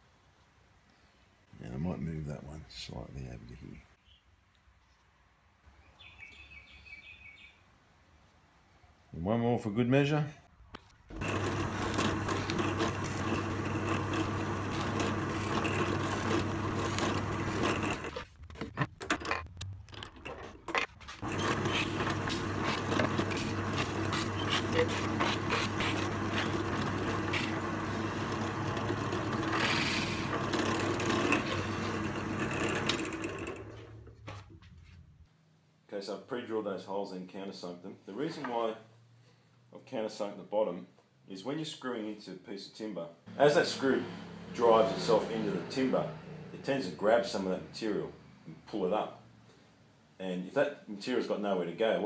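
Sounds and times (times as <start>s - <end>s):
drill press drilling: 11.1s - 18.2s, 21.2s - 34.1s.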